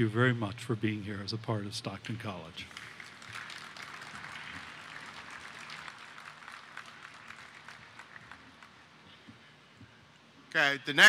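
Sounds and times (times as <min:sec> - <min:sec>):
audience applauding: 0:02.7 - 0:08.9.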